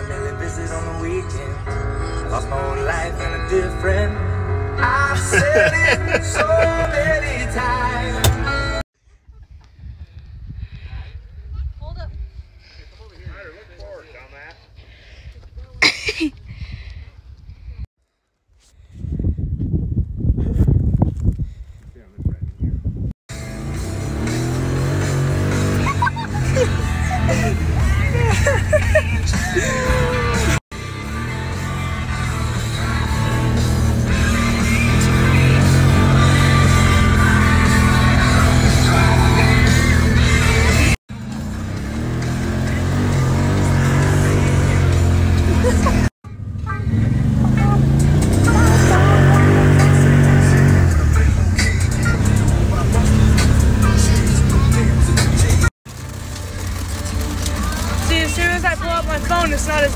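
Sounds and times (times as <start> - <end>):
engine running and revving: 0.0 - 8.8, 23.3 - 59.9
vehicle driving noise: 0.0 - 8.8, 23.3 - 59.9
voices talking: 42.4 - 55.6.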